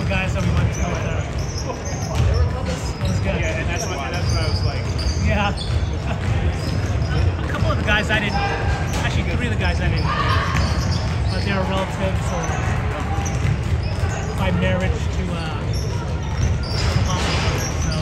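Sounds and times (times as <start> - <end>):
basketball dribbling on wood floor: 12.1 - 14.9.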